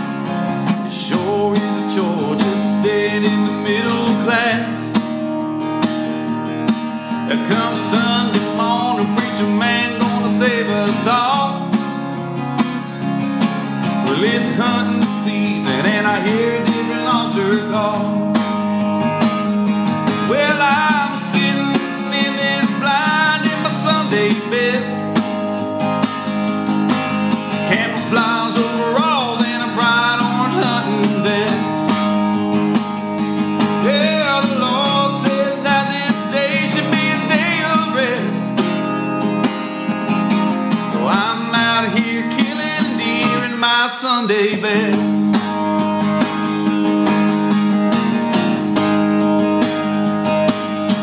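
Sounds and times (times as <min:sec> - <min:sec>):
acoustic guitar strumming: 0:00.0 - 0:51.0
man singing country song: 0:00.0 - 0:51.0.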